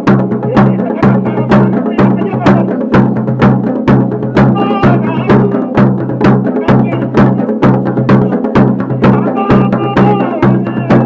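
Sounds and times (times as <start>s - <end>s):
drums beating steadily: 0.0s - 11.0s.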